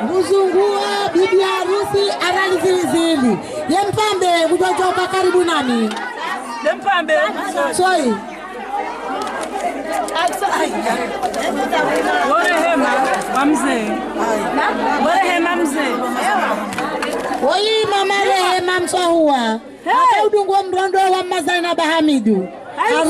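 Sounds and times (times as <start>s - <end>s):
woman speaking into a microphone: 0.0s - 8.4s, 10.1s - 16.6s, 17.4s - 23.0s
women talking over one another: 0.0s - 23.0s.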